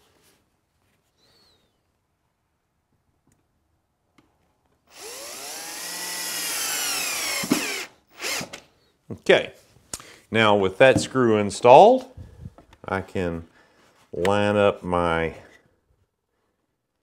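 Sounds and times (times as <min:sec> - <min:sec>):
cordless drill driving a screw: 0:04.9 - 0:08.6
drill stopping click: 0:04.9 - 0:08.6.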